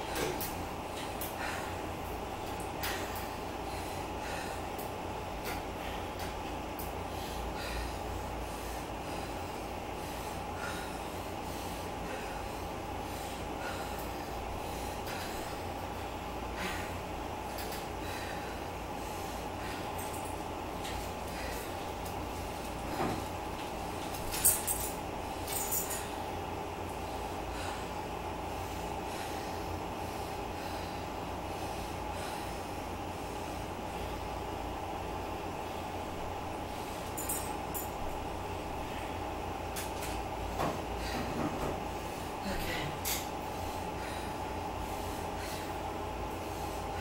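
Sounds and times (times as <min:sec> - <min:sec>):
elliptical trainer rumble and hum: 0:00.0 - 0:47.0
heavy breathing: 0:00.1 - 0:23.4, 0:24.7 - 0:34.4, 0:40.5 - 0:47.0.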